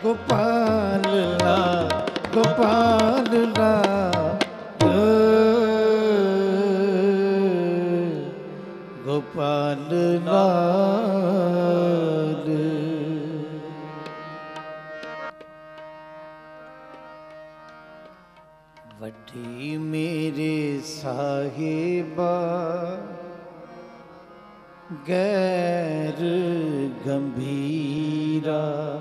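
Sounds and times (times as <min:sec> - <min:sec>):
harmonium: 0:00.0 - 0:29.0.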